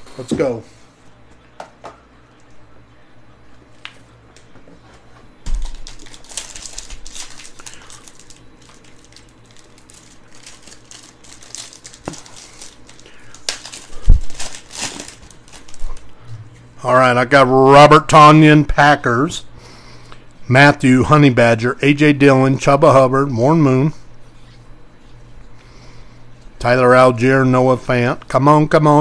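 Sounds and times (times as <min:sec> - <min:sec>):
foil wrapper crinkling: 0:05.5 - 0:16.2.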